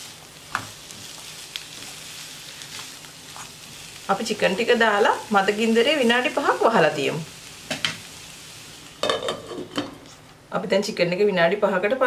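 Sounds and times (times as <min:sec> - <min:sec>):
chicken and onions sizzling in oil: 0:00.0 - 0:10.2.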